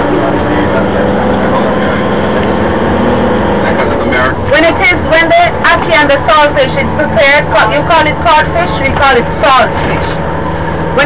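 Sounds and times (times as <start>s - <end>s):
bus engine and road noise: 0.0s - 11.0s.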